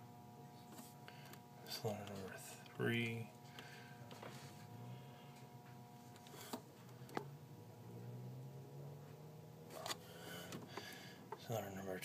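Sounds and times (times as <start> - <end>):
faint low room hum: 0.0 - 12.0.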